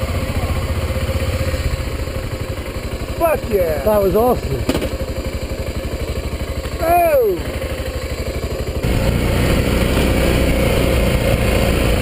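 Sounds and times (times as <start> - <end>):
motorcycle engine idling: 0.0 - 12.0
person exclaiming: 3.2 - 4.7, 6.7 - 7.6.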